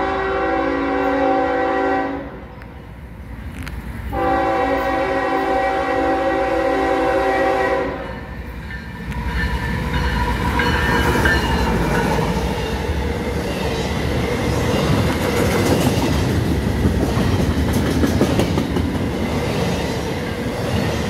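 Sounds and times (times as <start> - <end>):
diesel locomotive passing: 0.0 - 21.0
wheels rumbling on rail: 0.0 - 21.0
rail clicks: 2.5 - 4.2, 8.0 - 21.0.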